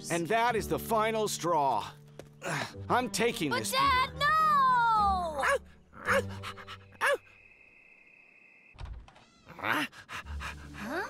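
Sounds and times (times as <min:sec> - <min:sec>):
crickets trilling: 0:05.7 - 0:08.8.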